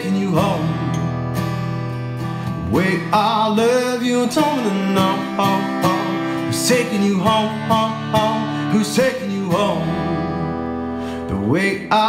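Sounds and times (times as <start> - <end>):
person singing: 0.0 - 1.2, 2.6 - 12.0
acoustic guitar strumming: 0.0 - 12.0.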